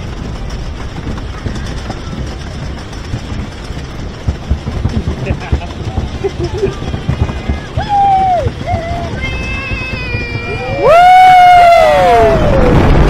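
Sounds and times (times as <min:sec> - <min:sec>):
roller coaster lift chain rattling: 0:00.0 - 0:13.0.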